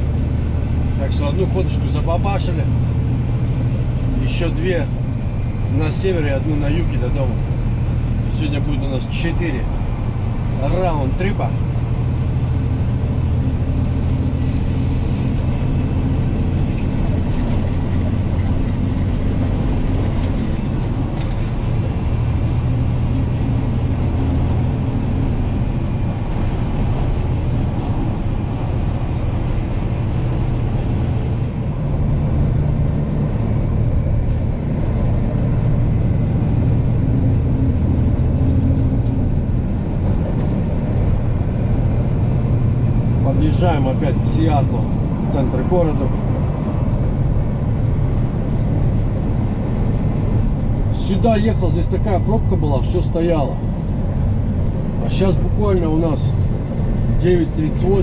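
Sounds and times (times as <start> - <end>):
road noise: 0.0 - 58.0
truck diesel engine droning: 0.0 - 58.0.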